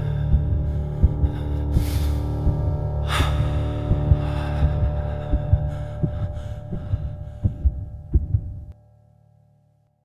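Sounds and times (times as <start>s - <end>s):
faint hum: 0.0s - 8.8s
heartbeat-like double thumps: 0.0s - 8.8s
low drone with held tones: 0.0s - 9.5s.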